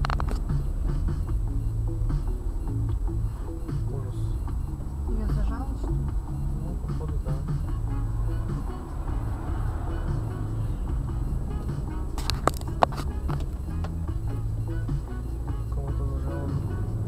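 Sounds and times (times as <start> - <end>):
car engine drone: 0.0 - 17.0
car radio music: 0.0 - 17.0
road noise: 0.0 - 17.0.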